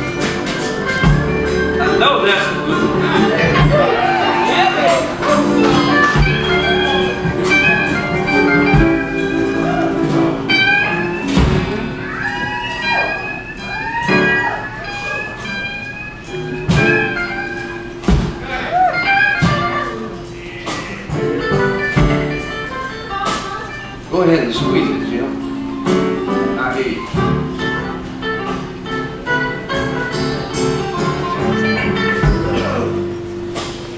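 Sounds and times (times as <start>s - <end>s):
bass guitar: 0.0s - 33.9s
drums: 0.0s - 33.9s
electric guitar lead: 0.0s - 33.9s.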